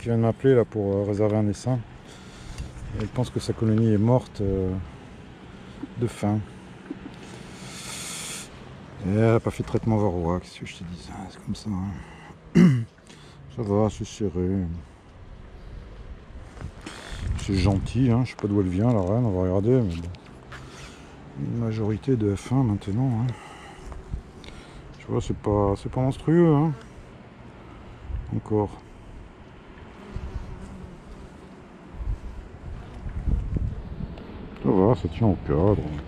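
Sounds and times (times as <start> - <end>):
faint steady hum: 0.0 - 36.0
outdoor background noise: 0.0 - 36.0
wind rushing on microphone: 15.3 - 18.2, 28.0 - 28.5, 31.9 - 36.0.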